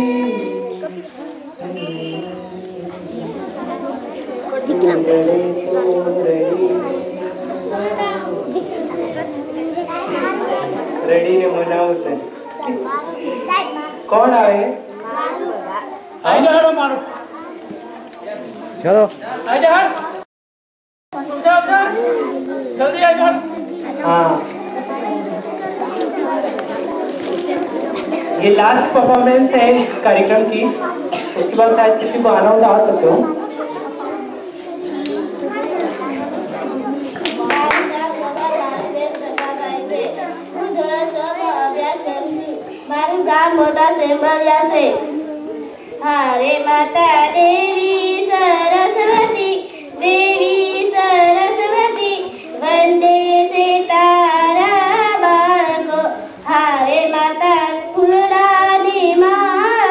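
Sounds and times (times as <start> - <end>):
chatter of many voices: 0.0 - 20.3, 21.1 - 59.9.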